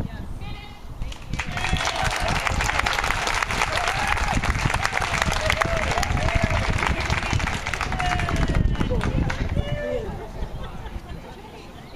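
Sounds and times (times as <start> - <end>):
wind on microphone: 0.0 - 11.5
people clapping: 1.1 - 9.7.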